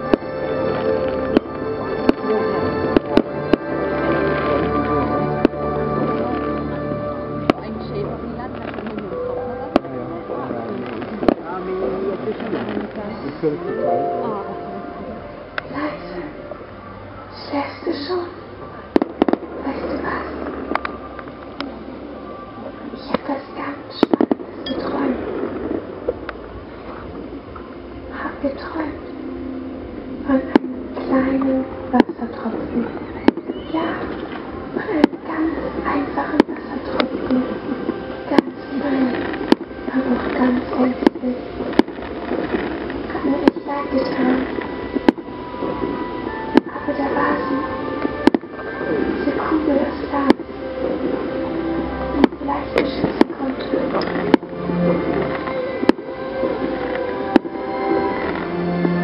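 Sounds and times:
background music: 0.0s - 59.0s
crowd chatter: 0.0s - 59.0s
people talking: 1.7s - 3.4s, 7.5s - 16.5s, 17.3s - 18.9s, 19.5s - 20.5s, 22.7s - 25.3s, 28.1s - 29.0s, 30.2s - 41.6s, 43.0s - 44.6s, 46.6s - 47.9s, 48.7s - 50.4s, 52.1s - 55.9s.

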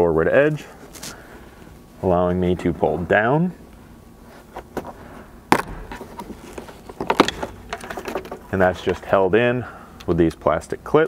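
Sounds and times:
plastic rattling: 5.6s - 9.0s.

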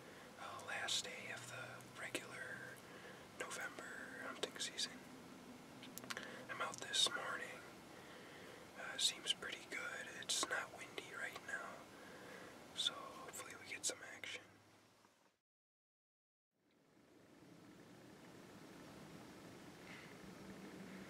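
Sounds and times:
man whispering: 0.4s - 2.8s, 3.4s - 5.0s, 6.1s - 7.7s, 8.8s - 11.9s, 12.8s - 14.5s.

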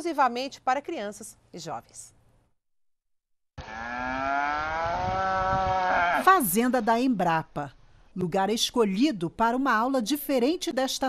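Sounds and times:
cow mooing: 3.6s - 6.3s.

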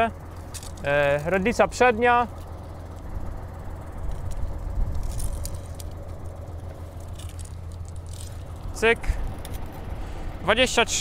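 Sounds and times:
tractor engine idling: 0.0s - 11.0s.

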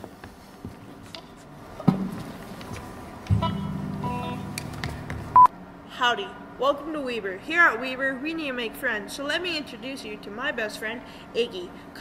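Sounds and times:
electric guitar chord ringing: 3.3s - 5.5s.

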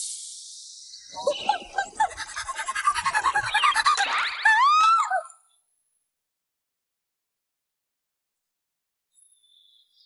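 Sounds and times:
girl's high squeal: 4.4s - 5.4s.

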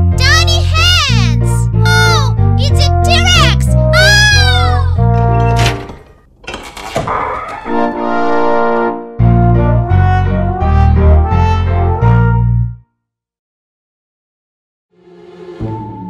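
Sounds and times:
upbeat cartoon music: 0.0s - 5.8s, 7.5s - 12.9s
whistle-like glides: 15.0s - 16.0s.

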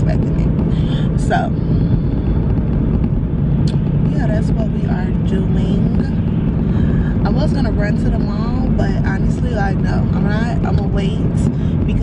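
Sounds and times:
road and engine rumble in car: 0.0s - 12.0s.

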